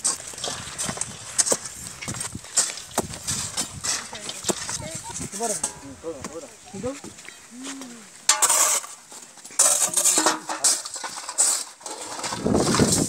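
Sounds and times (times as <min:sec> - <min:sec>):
iron bar striking stony soil: 0:00.0 - 0:06.4, 0:08.2 - 0:13.0
people talking: 0:03.9 - 0:08.1.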